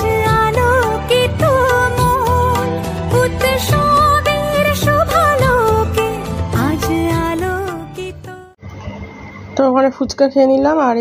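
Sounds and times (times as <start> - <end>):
background music: 0.0 - 8.6
woman speaking: 9.6 - 11.0.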